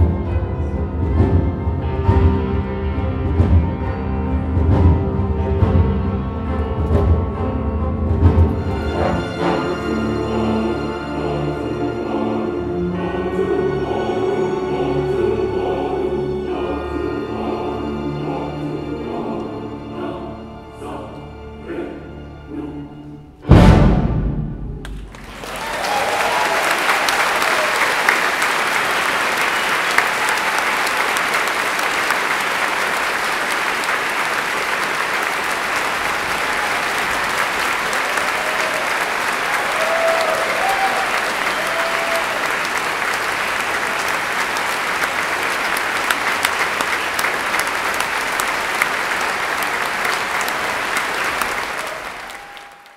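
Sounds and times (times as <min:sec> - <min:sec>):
audience applauding: 0:24.8 - 0:52.9.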